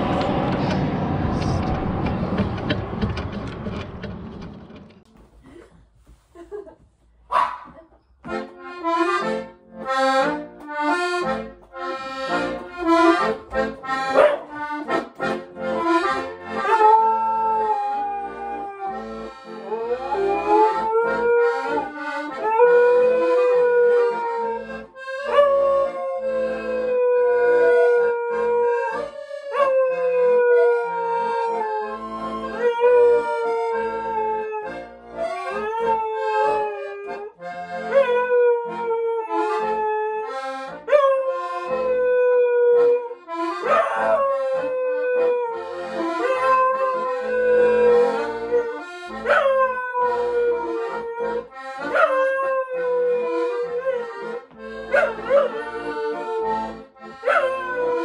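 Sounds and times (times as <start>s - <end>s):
accordion chords: 8.1s - 17.4s, 18.3s - 29.6s, 31.2s - 58.0s
dog howling: 16.6s - 37.3s, 37.9s - 54.2s, 54.9s - 56.5s, 57.2s - 58.0s.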